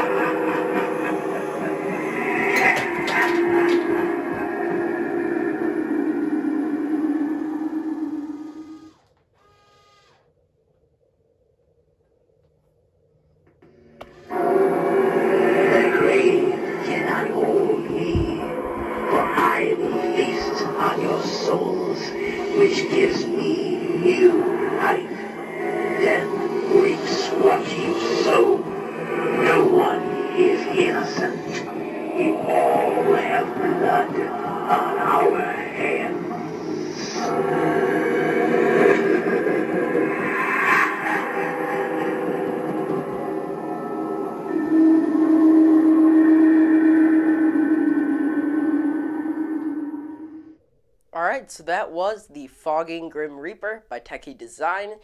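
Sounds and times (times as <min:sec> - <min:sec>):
spooky music with wordless voices: 0:00.0 - 0:08.9, 0:13.6 - 0:50.6
low gong-like drone: 0:00.0 - 0:09.0, 0:13.7 - 0:50.6.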